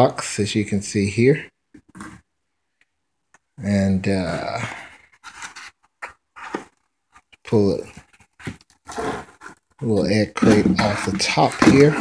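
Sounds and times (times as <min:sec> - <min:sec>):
pulp packing scraping and rustling: 0:04.5 - 0:12.0.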